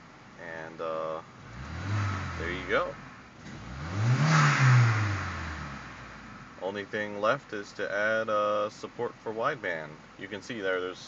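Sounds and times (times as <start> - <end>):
car engine revving: 1.2 - 7.2.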